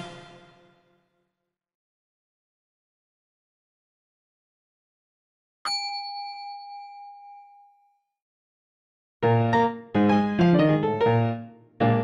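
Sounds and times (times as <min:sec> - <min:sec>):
bell-like ding: 0:05.7 - 0:08.0.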